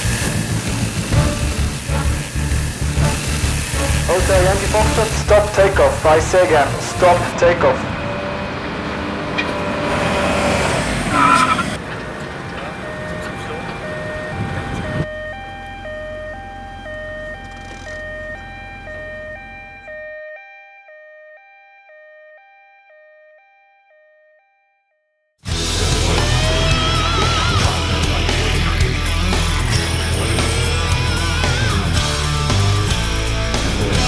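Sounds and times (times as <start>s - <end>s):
two-tone emergency siren: 1.1s - 31.9s.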